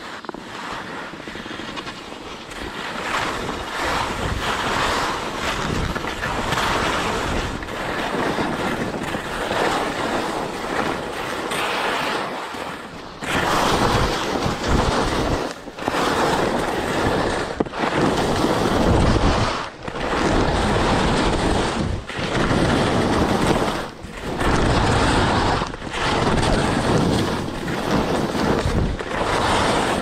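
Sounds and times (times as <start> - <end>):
skis scraping over snow: 0.0 - 30.0
wind buffeting microphone: 0.0 - 30.0.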